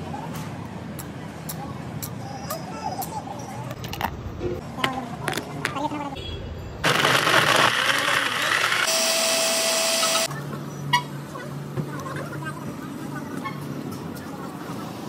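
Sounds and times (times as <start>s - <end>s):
blender grinding ice: 6.8s - 10.3s.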